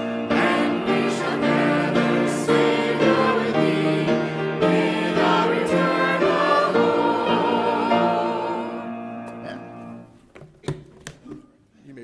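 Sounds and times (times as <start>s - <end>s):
church choir singing hymn: 0.0s - 10.0s.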